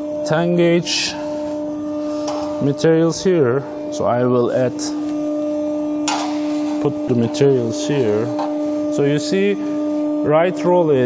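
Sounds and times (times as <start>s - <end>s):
machine hum: 0.0s - 11.0s
steel sheet handling noise: 6.0s - 6.9s.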